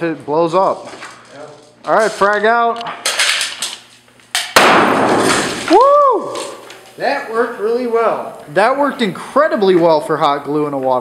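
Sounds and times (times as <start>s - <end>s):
grenade bang: 4.5s - 5.7s
hissing rush with pellets scattering: 4.5s - 7.9s
man exclaiming: 5.7s - 6.6s.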